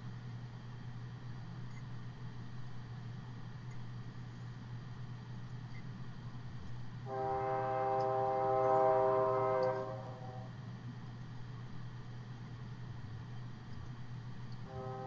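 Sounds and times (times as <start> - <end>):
low electrical hum: 0.0 - 15.0
horn-like tone: 7.1 - 10.6, 14.7 - 15.0.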